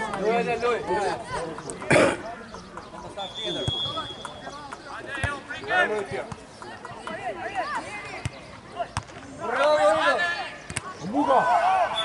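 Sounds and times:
players shouting: 3.2s - 12.0s.

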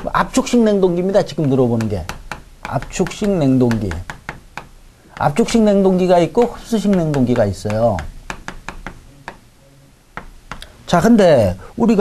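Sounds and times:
chalk taps on a board: 1.2s - 9.4s, 10.1s - 10.7s.

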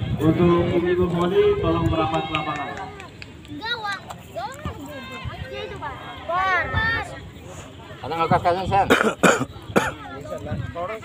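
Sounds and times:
person coughing: 8.9s - 10.0s.

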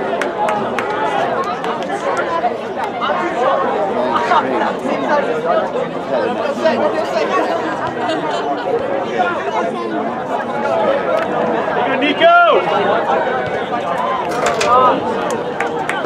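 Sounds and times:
crowd of overlapping conversation: 0.0s - 16.0s.

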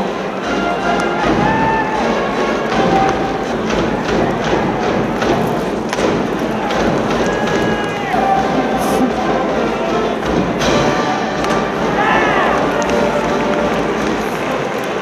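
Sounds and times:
drum thumps: 2.7s - 9.1s.

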